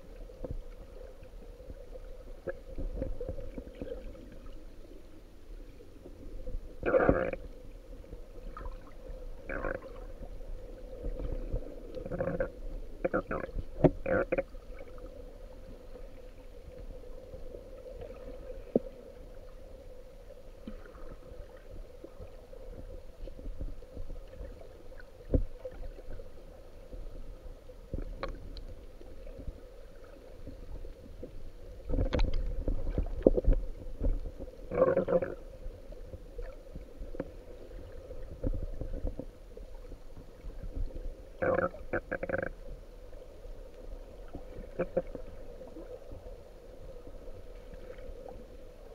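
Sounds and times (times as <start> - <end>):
faint underwater hum: 0.0 - 48.9
low rumble of water: 0.0 - 48.9.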